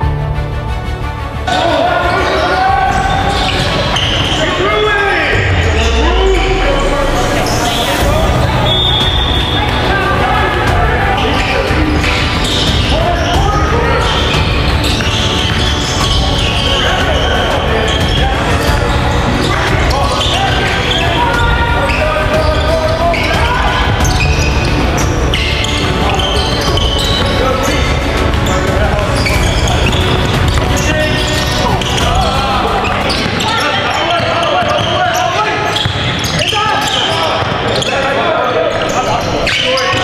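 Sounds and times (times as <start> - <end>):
people calling out: 1.5 - 40.0.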